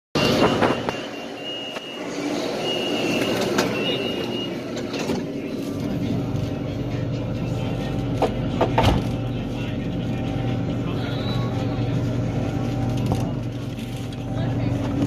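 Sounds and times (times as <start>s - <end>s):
high warning beeps: 0.2s - 5.1s
low train hum: 0.2s - 15.0s.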